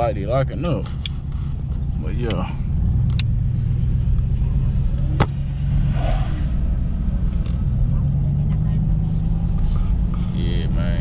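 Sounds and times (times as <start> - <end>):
car engine and road hum: 0.0 - 11.0.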